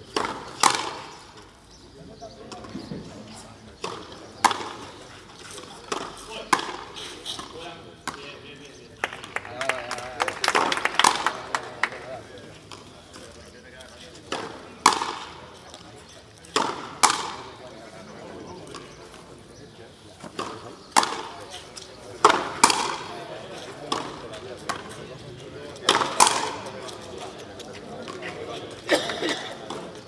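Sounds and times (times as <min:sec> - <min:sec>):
rubber ball struck by rackets: 0:00.2 - 0:01.1, 0:22.2 - 0:23.1.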